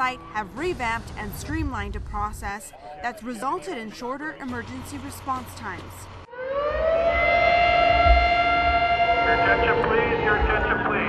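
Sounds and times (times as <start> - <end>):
siren wailing: 6.3 - 11.0
low rumble: 7.1 - 11.0.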